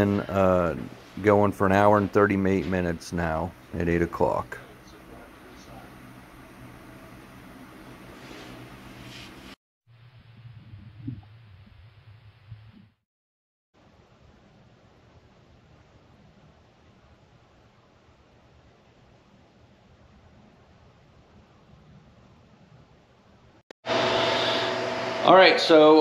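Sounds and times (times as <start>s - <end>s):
low steady hum: 0.0s - 12.8s.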